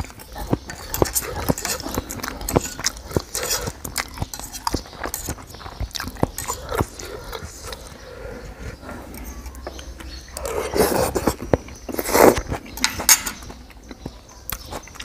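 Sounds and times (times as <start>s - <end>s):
chewing and mouth smacking: 0.0s - 15.0s.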